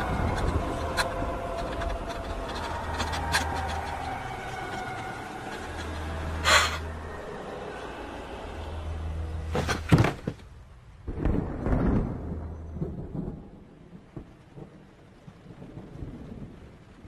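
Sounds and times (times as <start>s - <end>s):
low rumble: 0.0s - 9.5s.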